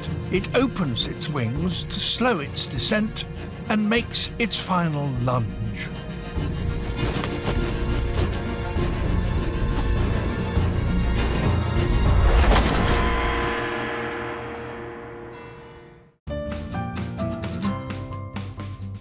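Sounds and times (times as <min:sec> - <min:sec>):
dramatic soundtrack music: 0:00.0 - 0:19.0.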